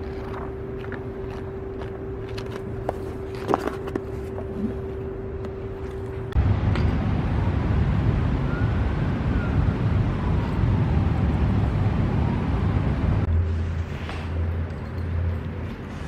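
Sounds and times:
city traffic rumble: 0.0s - 16.0s
steady hum: 0.0s - 16.0s.

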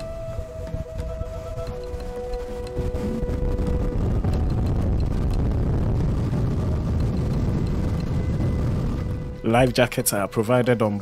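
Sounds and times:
motorboat engine drone: 0.0s - 9.4s
water and wind rushing: 0.0s - 11.0s.

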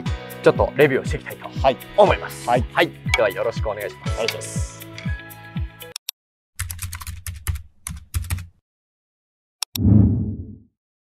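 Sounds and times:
low hum: 9.8s - 10.6s.

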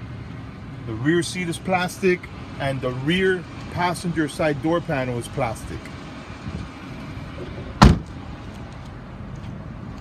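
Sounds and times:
car door slamming: 7.4s - 8.2s.

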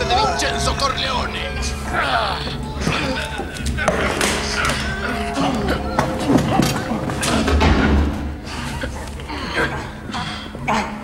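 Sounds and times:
film score music: 0.0s - 10.8s.

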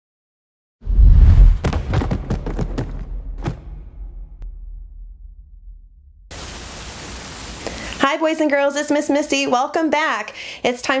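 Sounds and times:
loud deep boom: 0.8s - 6.4s.

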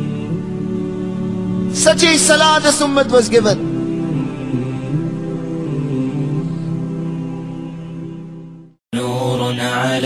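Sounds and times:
background vocal drone: 0.0s - 10.0s
voices singing over low hum: 0.0s - 10.0s.

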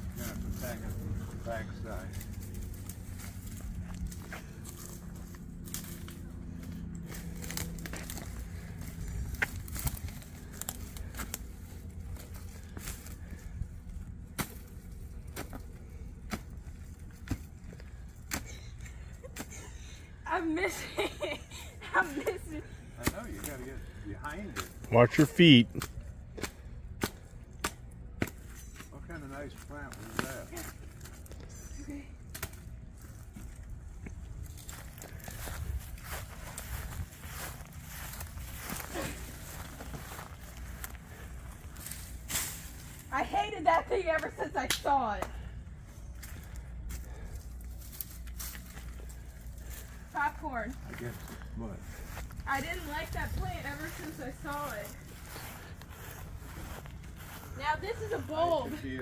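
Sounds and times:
people talking: 24.9s - 25.8s, 57.6s - 59.0s.

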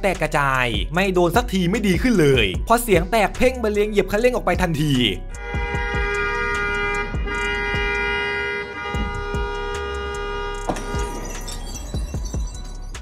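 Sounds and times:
car horn long blast: 5.3s - 11.3s.

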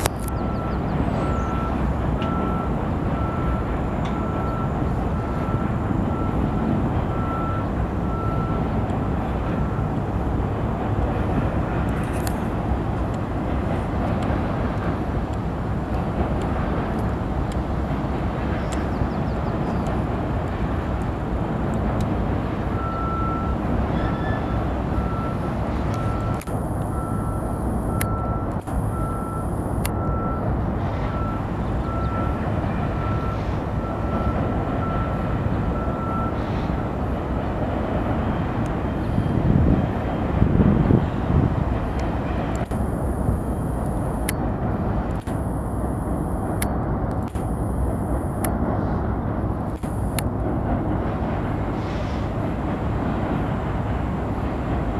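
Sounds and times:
freight train rumbling on bridge: 0.0s - 54.9s
reversing alarm beeping: 0.2s - 8.8s, 9.5s - 10.0s, 22.7s - 36.4s, 45.1s - 48.6s.

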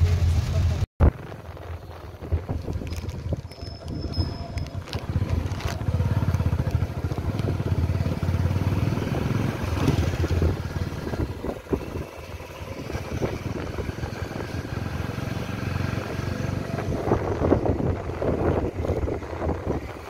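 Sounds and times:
motorcycle engine running: 0.0s - 20.0s
wind buffeting microphone: 1.0s - 20.0s.

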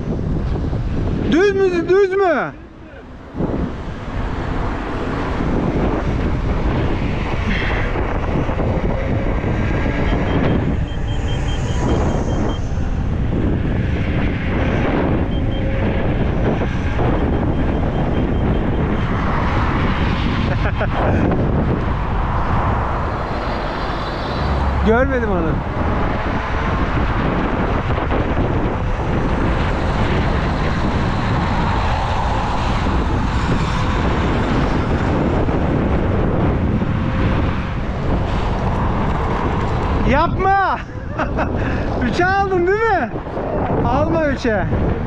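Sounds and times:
tyre and road noise: 0.0s - 45.0s
wind buffeting microphone: 0.0s - 45.0s.

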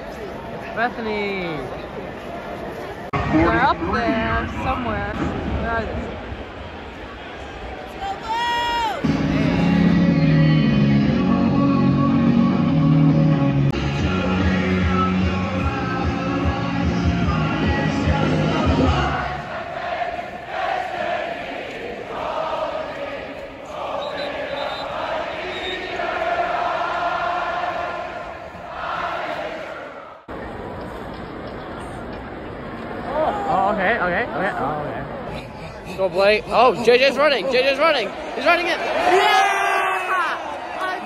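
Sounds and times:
crowd singing and cheering: 8.9s - 30.5s
loud music over public address: 9.0s - 19.4s.

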